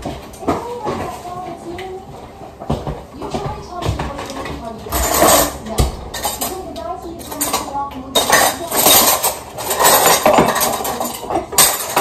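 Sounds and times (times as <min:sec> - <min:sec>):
dishes and cutlery clattering: 0:02.7 - 0:12.0.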